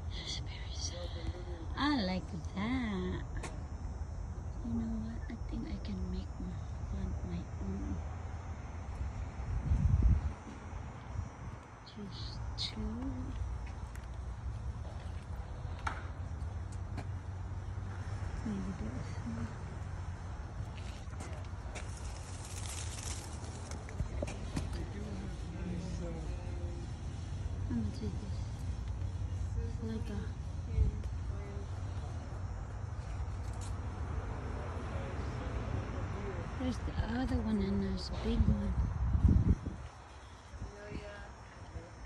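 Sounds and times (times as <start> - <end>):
low outdoor rumble: 0.0 - 42.0.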